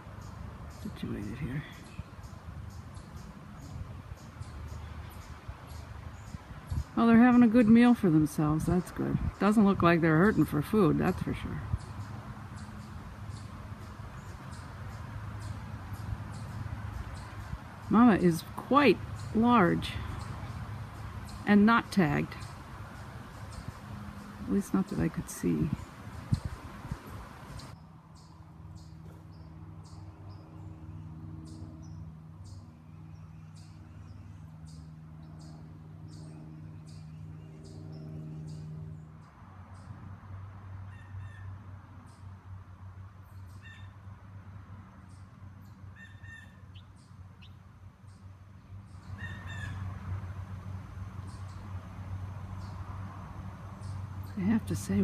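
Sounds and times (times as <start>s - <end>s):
small birds chirping: 0.0s - 40.0s, 44.9s - 49.9s, 50.7s - 55.0s.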